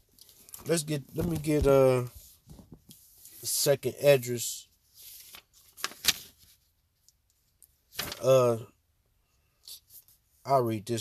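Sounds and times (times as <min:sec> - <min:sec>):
book pages rustling: 0:00.2 - 0:03.4, 0:05.0 - 0:06.7, 0:07.9 - 0:08.3.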